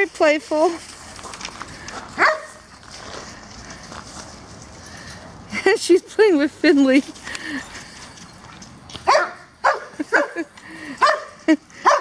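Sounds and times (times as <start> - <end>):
dogs barking: 2.2 - 2.6, 9.0 - 10.4, 11.0 - 12.0.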